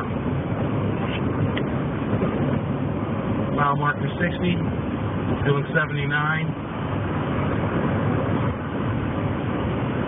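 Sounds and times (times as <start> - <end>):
car road and engine noise: 0.0 - 10.0.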